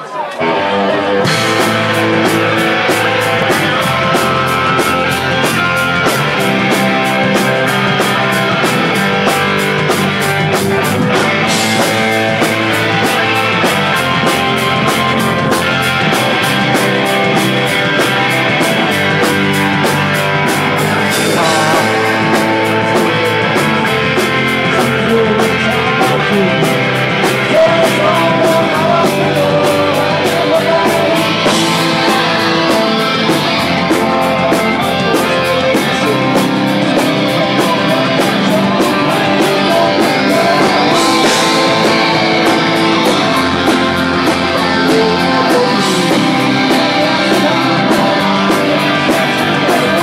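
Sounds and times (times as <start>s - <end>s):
electric guitar: 0.0s - 50.0s
punk rock band playing: 0.0s - 50.0s.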